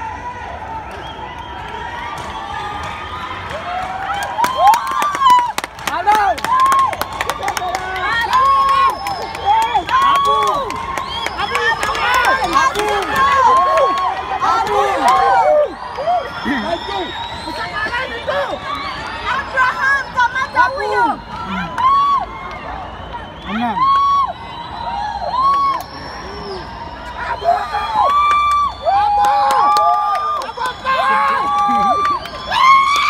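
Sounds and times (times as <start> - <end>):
people shouting and cheering: 0.0 - 33.0
sharp claps: 1.4 - 14.3.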